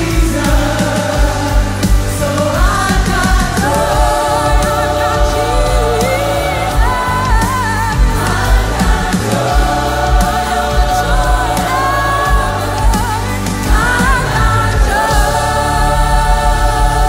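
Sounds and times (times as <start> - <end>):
bass: 0.0 - 17.0
gospel choir singing: 0.0 - 17.0
lead singer singing: 0.0 - 17.0
steady drum beat: 0.0 - 17.0.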